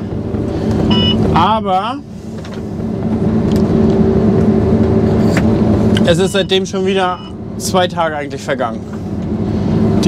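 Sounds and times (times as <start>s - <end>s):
combine harvester engine drone: 0.0s - 10.0s.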